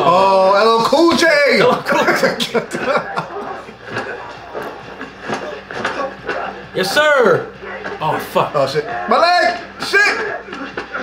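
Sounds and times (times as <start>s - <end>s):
steady low hum: 0.0s - 11.0s
voices: 0.0s - 11.0s.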